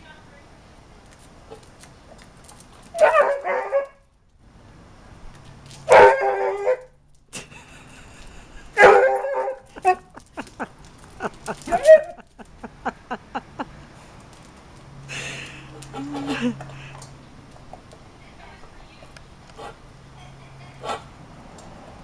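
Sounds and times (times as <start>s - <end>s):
dog barking and yapping: 2.9s - 4.0s, 5.9s - 6.9s, 8.8s - 10.2s, 11.5s - 12.3s.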